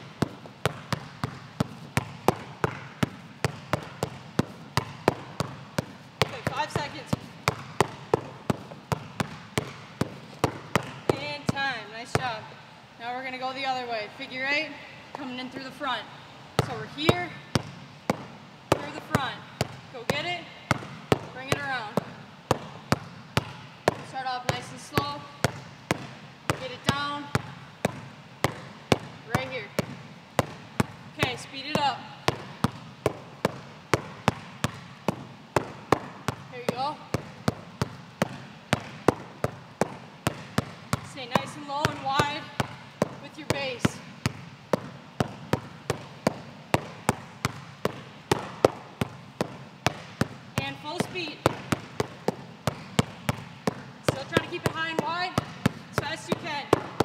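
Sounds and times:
basketball bouncing on gym floor: 0.0s - 57.0s.

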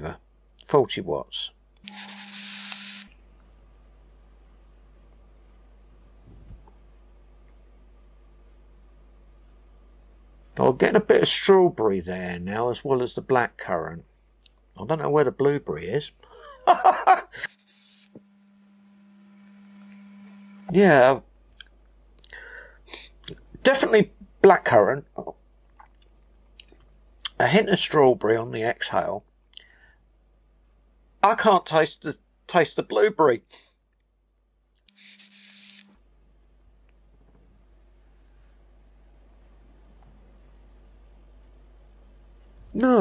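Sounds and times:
faint steady hum: 0.0s - 31.3s, 34.2s - 42.8s
airy hiss of vapour inhale: 1.9s - 3.1s, 17.4s - 18.2s, 34.9s - 35.9s
man laughing: 16.3s - 17.5s.

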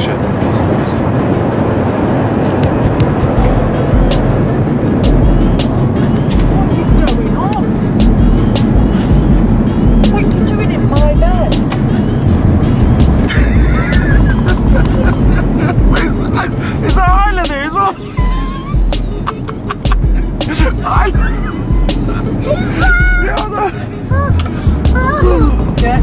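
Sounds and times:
music with pulsing bass: 2.6s - 26.0s.

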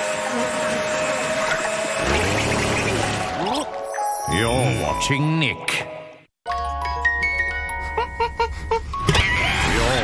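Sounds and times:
jack-in-the-box plinking tune: 6.5s - 9.0s.

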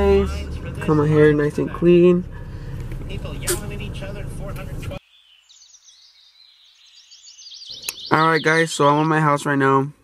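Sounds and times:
car interior noise: 0.0s - 5.0s
small bird chirping: 5.0s - 9.2s.

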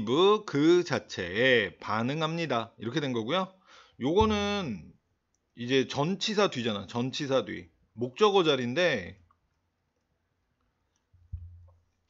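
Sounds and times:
stylus tapping on tablet screen: 11.2s - 11.8s.

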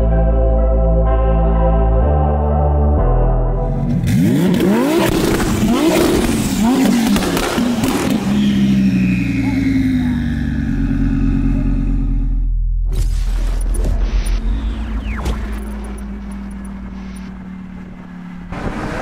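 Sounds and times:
car engine revving: 3.6s - 12.6s, 13.2s - 19.0s
exhaust crackles and pops: 4.5s - 8.4s.

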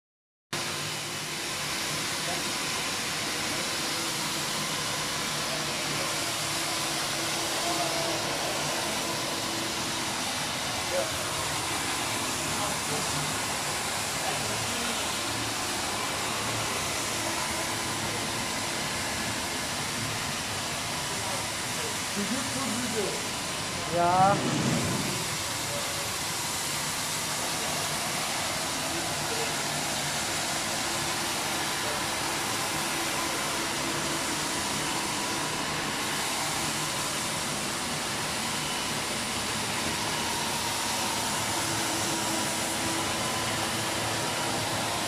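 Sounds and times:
floor scrubber running: 0.6s - 45.0s.

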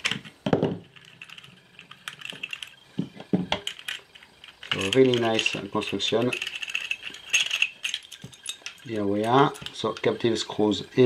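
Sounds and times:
small metallic clicks: 0.0s - 10.2s.

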